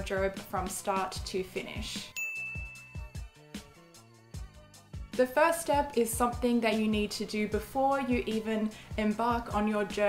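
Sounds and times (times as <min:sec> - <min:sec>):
background music with beat: 0:00.0 - 0:10.0
bright ding: 0:02.1 - 0:03.2.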